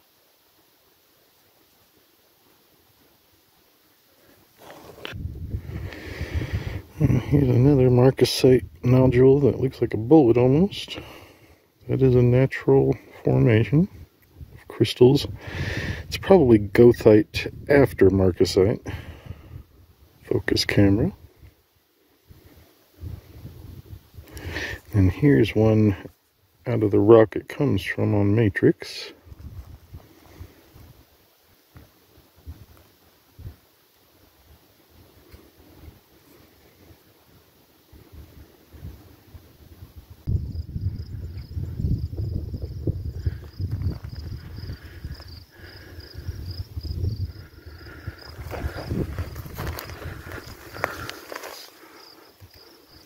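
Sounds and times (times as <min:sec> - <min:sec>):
wind buffeting microphone: 0:05.1 - 0:07.4, 0:39.8 - 0:51.1
insect chirping: 0:29.7 - 0:53.0.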